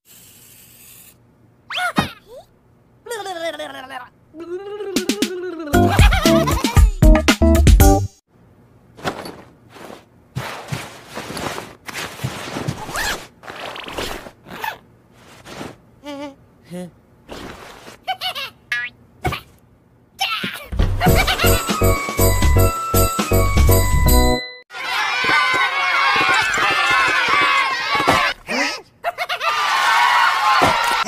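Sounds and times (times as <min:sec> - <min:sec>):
fabric rustling: 0:09.0 - 0:14.4
zipper being pulled up: 0:09.0 - 0:15.8.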